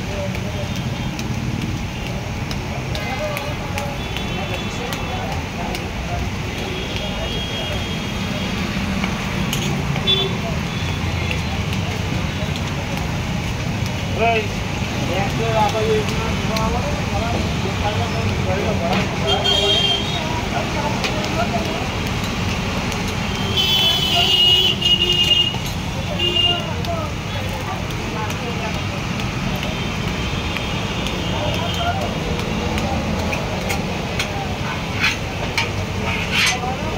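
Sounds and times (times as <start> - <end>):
background chatter: 0.0 - 36.9
traffic rumble: 0.0 - 36.9
vehicle horn: 19.3 - 20.2.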